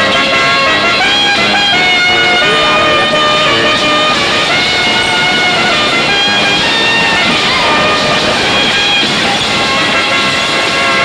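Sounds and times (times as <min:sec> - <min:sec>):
bumper cars running: 0:00.0 - 0:11.0.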